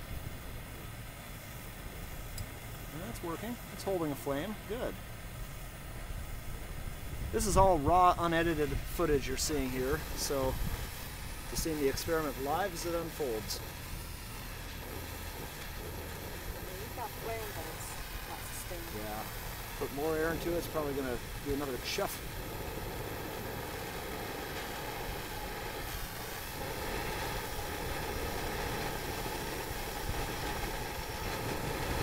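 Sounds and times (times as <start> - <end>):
low machine hum: 0.0 - 32.0
propane torch hissing: 0.0 - 32.0.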